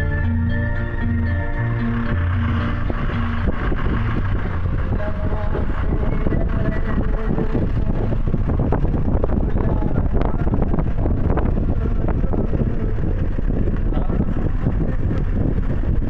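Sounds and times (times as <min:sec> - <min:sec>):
organ-like music with held chords: 0:00.0 - 0:13.3
vehicle rumbling on rough road: 0:00.0 - 0:16.0.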